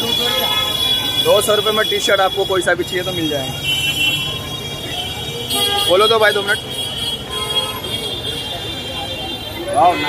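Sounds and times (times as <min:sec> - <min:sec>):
crowd voices: 0:00.0 - 0:10.0
traffic noise: 0:00.0 - 0:10.0.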